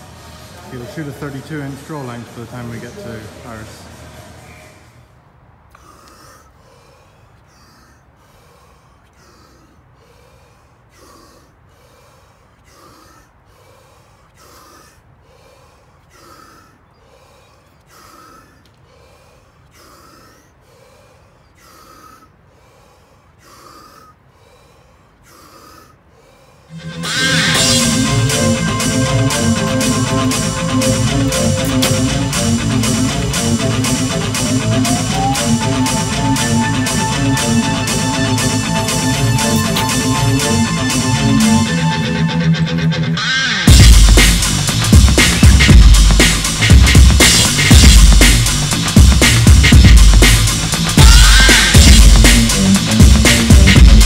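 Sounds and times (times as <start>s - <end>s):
man breathing deeply and rapidly: 5.0s - 54.0s
loud guitar music: 26.7s - 54.0s.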